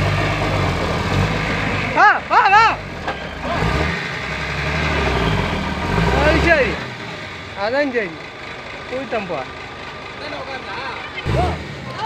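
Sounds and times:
dump truck diesel engine rumbling: 0.0 - 12.0
men shouting: 1.9 - 3.8.

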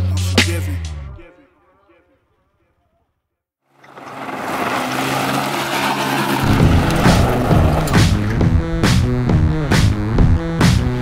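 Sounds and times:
heavy bass music beat: 0.0 - 1.2, 6.5 - 11.0
tyres on loose gravel: 3.7 - 8.7
car engine running: 3.8 - 11.0.

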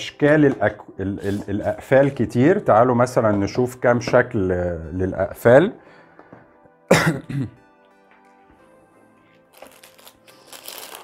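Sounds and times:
faint background music: 0.0 - 11.0
man clearing his throat: 6.9 - 7.6.

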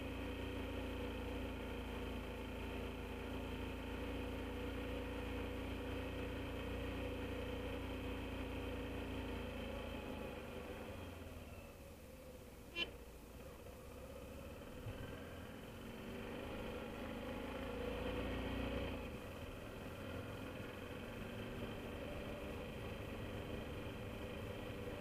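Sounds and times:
motorcycle engine revving: 14.3 - 25.0.

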